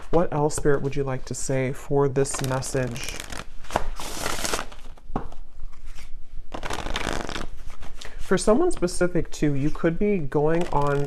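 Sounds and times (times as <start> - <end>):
cards being shuffled: 2.3 - 9.0, 9.6 - 11.0.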